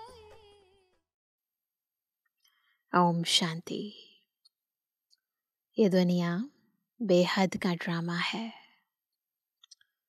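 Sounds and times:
woman speaking: 0:03.0 - 0:04.2, 0:05.8 - 0:08.7.

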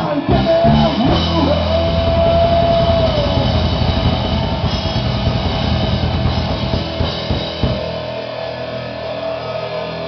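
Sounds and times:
loud live rock band: 0:00.0 - 0:10.0.

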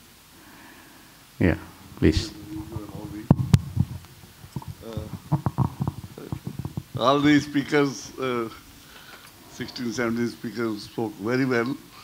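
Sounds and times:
microphone handling knocks and rubs: 0:01.7 - 0:07.8
person saying uh: 0:04.8 - 0:05.2.

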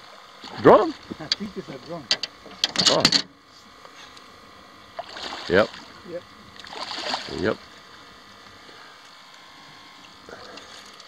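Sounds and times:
water splashing: 0:05.0 - 0:07.6.

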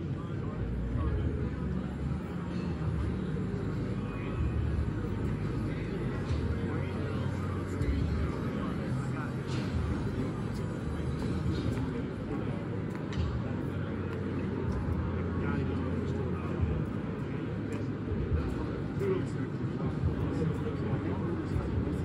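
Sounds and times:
crowd chatter: 0:00.0 - 0:22.0
low hum of hall noise: 0:00.0 - 0:22.0.

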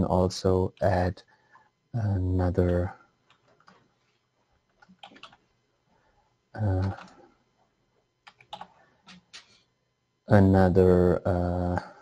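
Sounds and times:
faint keyboard keystrokes: 0:04.7 - 0:05.5, 0:06.8 - 0:07.2, 0:08.2 - 0:09.6.

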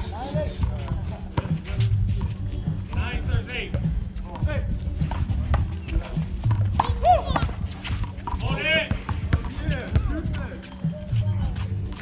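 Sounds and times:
music: 0:00.0 - 0:12.0
voices: 0:00.0 - 0:12.0
sneakers scuffing on concrete: 0:00.2 - 0:03.0, 0:03.7 - 0:12.0.

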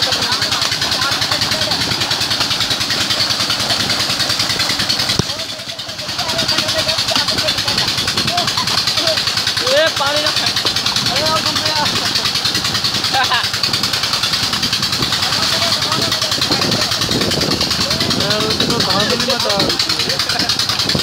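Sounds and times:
people splashing in water: 0:00.0 - 0:18.6
engine running: 0:00.0 - 0:21.0
voices calling out: 0:00.0 - 0:21.0
water gushing from a pipe: 0:00.0 - 0:21.0.

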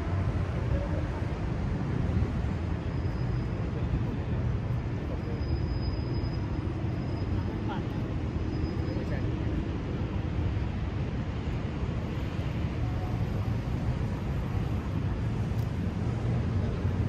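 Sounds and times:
city traffic rumble: 0:00.0 - 0:17.0.

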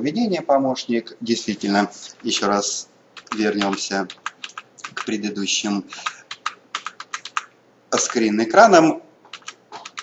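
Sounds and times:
keyboard keys clicking: 0:03.2 - 0:05.2, 0:06.0 - 0:08.2, 0:09.3 - 0:10.0.

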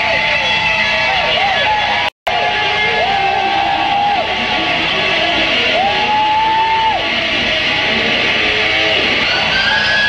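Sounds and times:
heavy metal band playing: 0:00.0 - 0:10.0.

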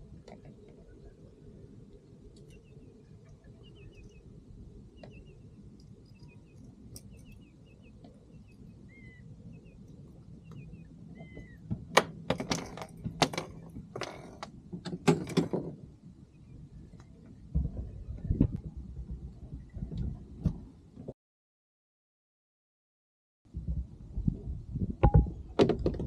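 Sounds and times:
water: 0:00.0 - 0:07.2
wind noise: 0:00.0 - 0:21.1, 0:23.5 - 0:26.0
bird chirps: 0:02.4 - 0:04.3, 0:04.9 - 0:11.7.

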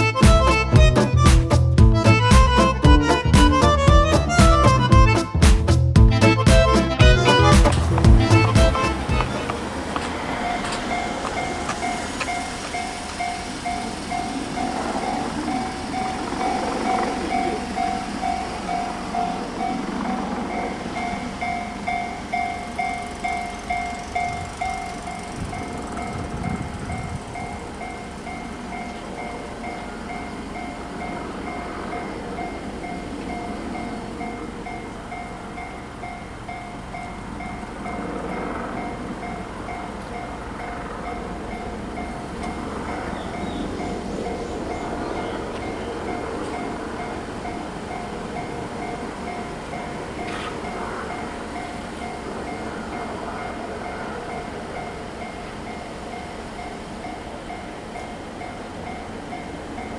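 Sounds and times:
passing road traffic: 0:00.0 - 0:59.9
level crossing alarm bell: 0:08.5 - 0:59.9.

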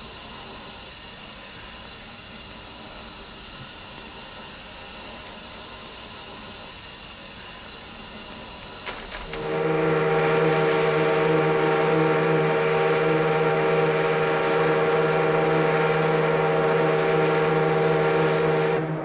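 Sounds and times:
ship horn deep blast: 0:09.3 - 0:19.0.

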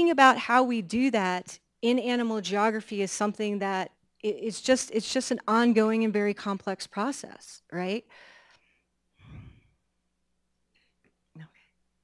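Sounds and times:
person sighing into microphone: 0:09.2 - 0:09.7.

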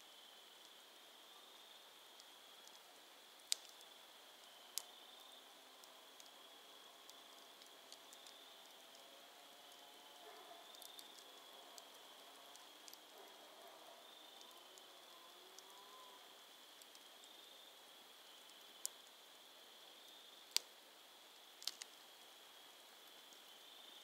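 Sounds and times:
night insects chorus: 0:00.0 - 0:24.0
campfire embers crackling: 0:00.1 - 0:24.0.

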